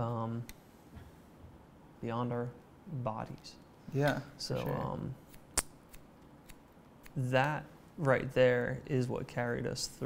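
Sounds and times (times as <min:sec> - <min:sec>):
scissors snipping hair: 0:05.3 - 0:07.6.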